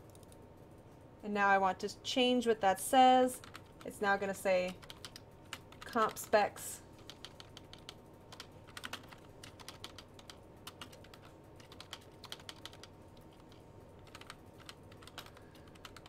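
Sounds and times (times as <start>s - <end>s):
computer keyboard typing: 0.0s - 0.4s, 3.4s - 16.0s.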